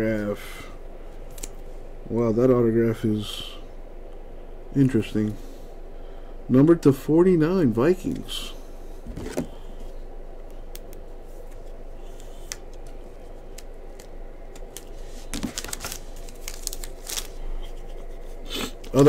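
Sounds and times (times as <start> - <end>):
cards clicking and scraping: 10.8 - 19.0.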